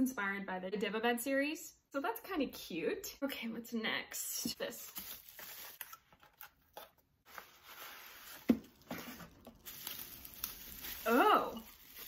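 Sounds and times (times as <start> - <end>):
cardboard box handled and opened: 4.9 - 10.1
packaging rustling and scraping: 4.9 - 12.0.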